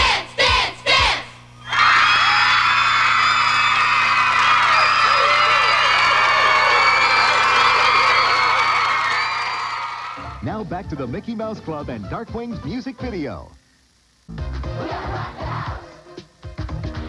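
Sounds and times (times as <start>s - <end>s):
steady low hum: 0.0s - 16.4s
audience cheering and clapping: 0.4s - 10.4s
music: 10.2s - 13.6s, 14.3s - 17.0s.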